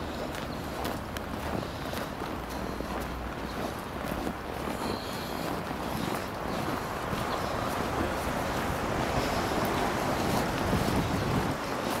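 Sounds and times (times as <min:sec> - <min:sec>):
outdoor noise: 0:00.0 - 0:12.0
wind buffeting microphone: 0:00.0 - 0:12.0.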